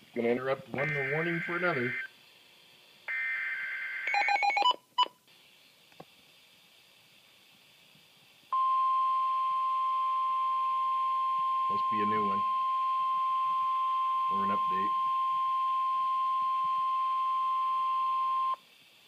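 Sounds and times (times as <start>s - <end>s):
person speaking: 0.2s - 2.0s
steady warning alarm tone: 0.8s - 2.1s, 8.6s - 18.6s.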